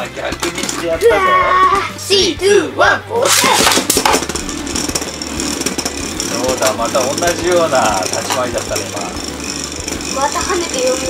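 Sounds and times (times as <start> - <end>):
spinning tops whirring on plastic: 0.0 - 2.4, 3.2 - 11.0.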